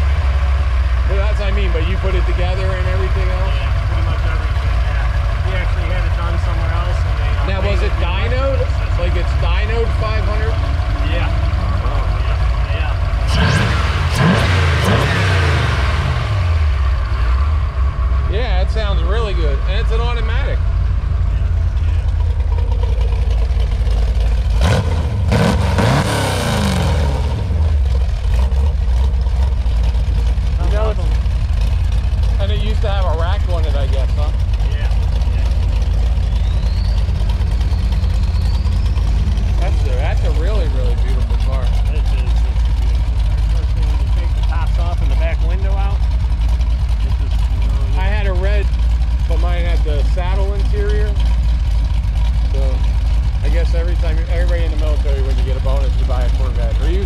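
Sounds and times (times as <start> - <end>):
car engine idling and revving: 0.0 - 57.0.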